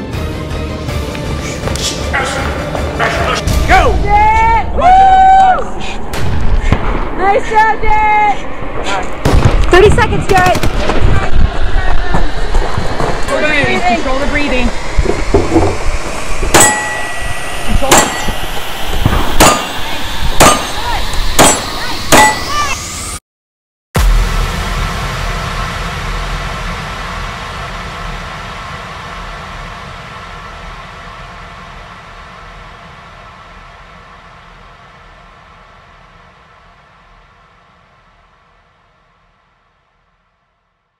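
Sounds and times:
long steady layered sound: 11.1 - 22.7, 24.0 - 40.1
sharp metallic clangs: 16.5 - 18.6, 19.4 - 20.8, 21.4 - 22.6.

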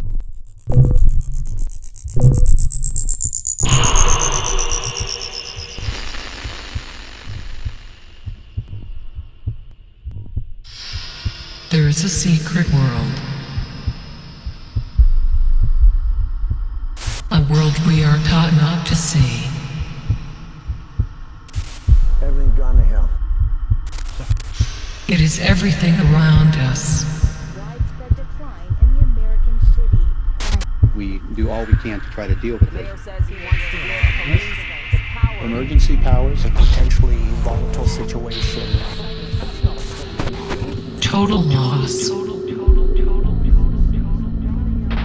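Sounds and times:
deep booming pulses: 0.0 - 45.0
fast low pulses: 0.0 - 45.0
noisy rush: 10.7 - 45.0.

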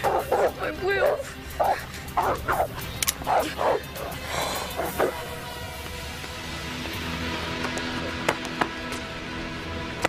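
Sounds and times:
dog barking: 0.0 - 5.3.

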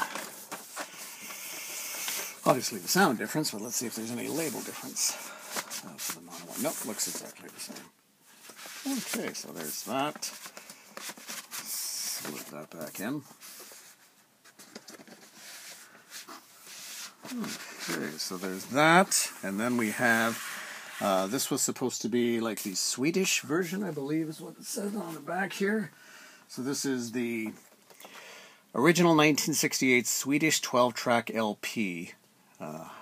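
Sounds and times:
record sleeve rustling: 0.0 - 3.1, 3.8 - 20.5.

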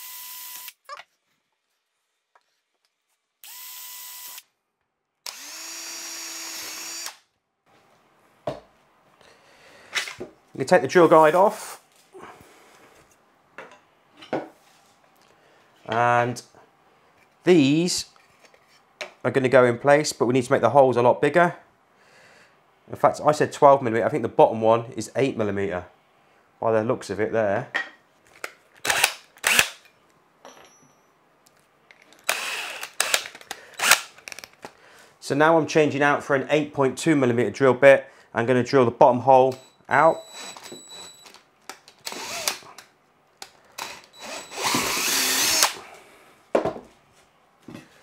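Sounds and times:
drill chuck rattling: 32.0 - 34.6, 40.3 - 42.7, 43.8 - 45.8.

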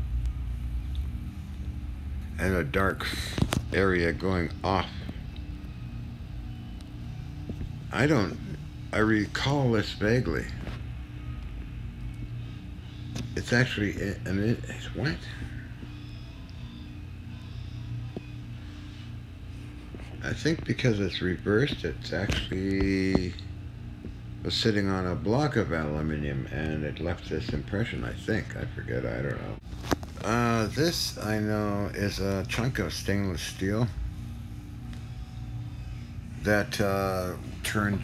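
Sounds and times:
faint steady tones: 0.0 - 38.0
low background hum: 0.0 - 38.0.

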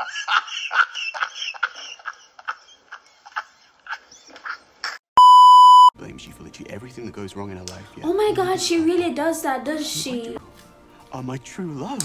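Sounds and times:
steady beep tone: 5.2 - 5.9.

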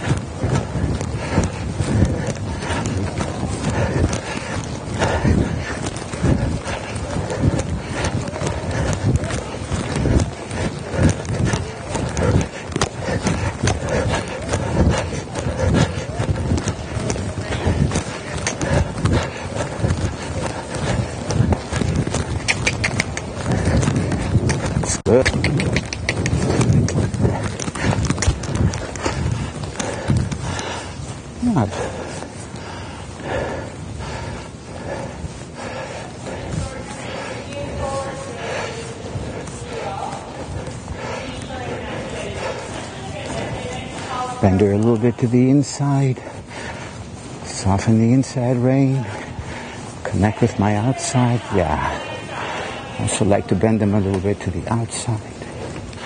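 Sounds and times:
hoofbeats trotting on sand: 0.0 - 56.0.

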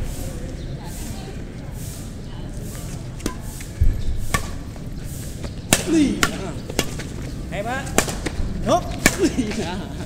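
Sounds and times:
rackets hitting shuttlecock: 3.2 - 9.7.

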